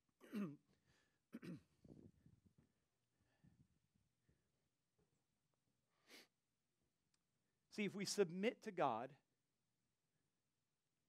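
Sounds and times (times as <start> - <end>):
man clearing his throat: 0.2 - 0.7, 1.3 - 1.8.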